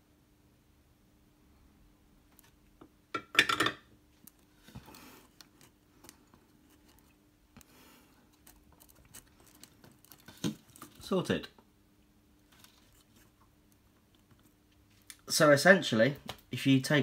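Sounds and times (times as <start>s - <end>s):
rustling of handling: 4.1s - 11.4s, 12.4s - 15.3s.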